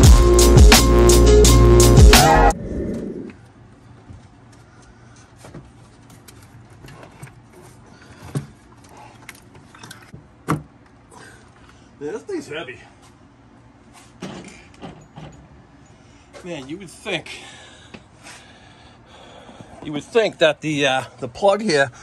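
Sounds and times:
intro music: 0:00.0 - 0:03.3.

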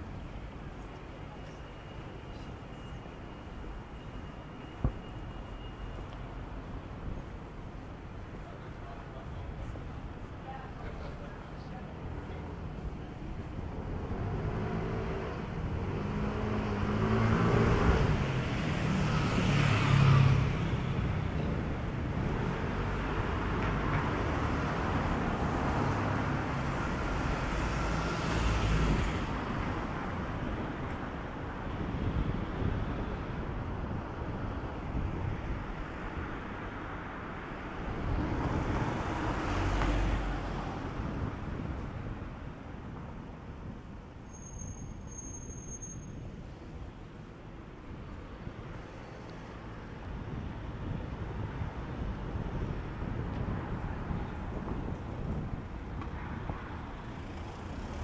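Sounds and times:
cars passing by: 0:00.0 - 0:58.0
road noise: 0:00.0 - 0:58.0.

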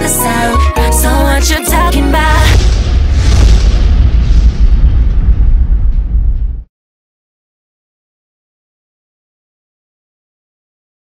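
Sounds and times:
explosion boom with rumbling tail: 0:02.3 - 0:06.7.

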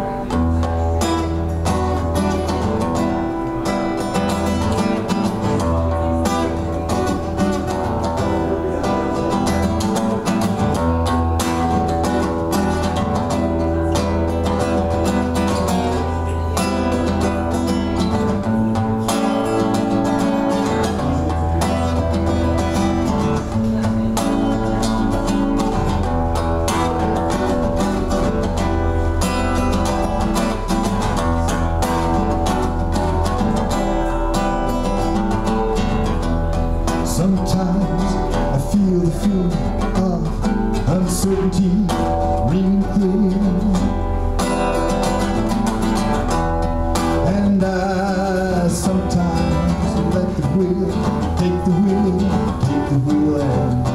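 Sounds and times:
solo acoustic guitar: 0:00.0 - 0:53.9.

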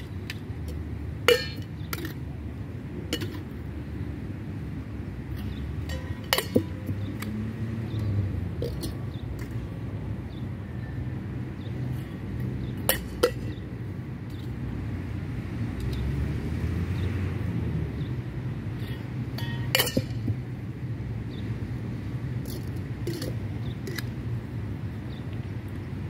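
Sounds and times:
bottles and shaker tin clinking: 0:00.6 - 0:02.2, 0:05.8 - 0:07.1, 0:19.4 - 0:20.3, 0:22.5 - 0:24.0.

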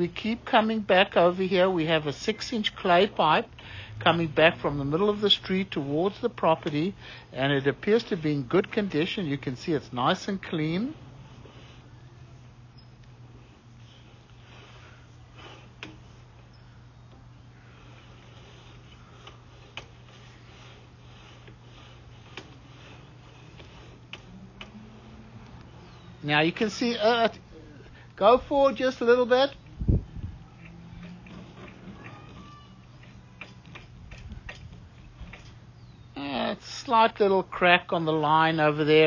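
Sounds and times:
faint low hum: 0:00.0 - 0:39.0
sharp cable clicks: 0:30.6 - 0:35.6.

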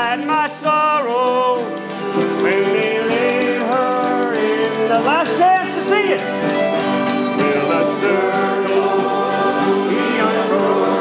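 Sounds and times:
acoustic guitars strumming: 0:00.0 - 0:11.0
person singing: 0:00.0 - 0:11.0
fiddle playing: 0:01.6 - 0:11.0.

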